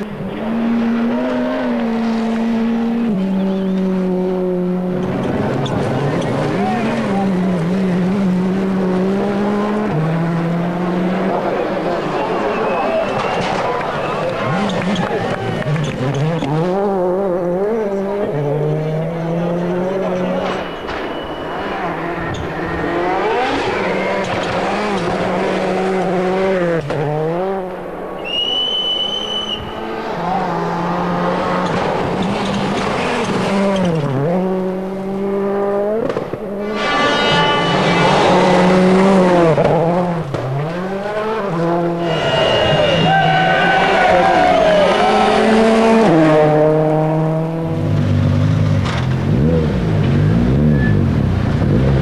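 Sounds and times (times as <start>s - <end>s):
rally car engine revving: 0.0s - 52.0s.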